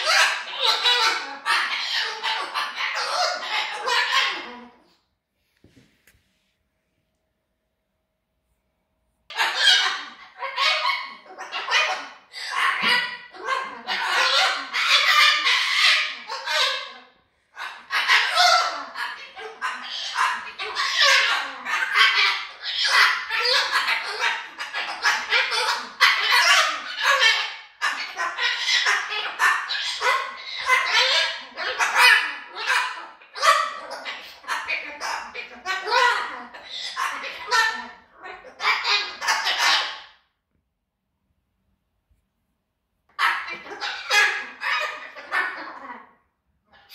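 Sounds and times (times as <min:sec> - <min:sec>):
cockatoo harsh calls: 0:00.0 - 0:05.0, 0:09.3 - 0:40.4, 0:43.1 - 0:46.9.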